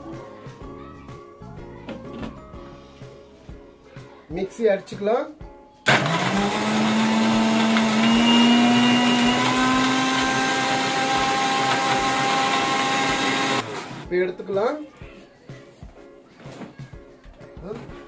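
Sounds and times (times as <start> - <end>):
mixer grinder motor whine: 5.9 - 14.1.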